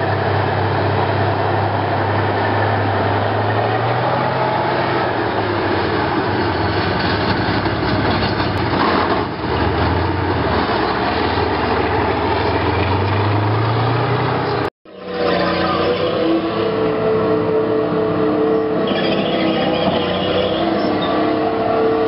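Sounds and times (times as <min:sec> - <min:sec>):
tank diesel engine running: 0:00.0 - 0:22.0.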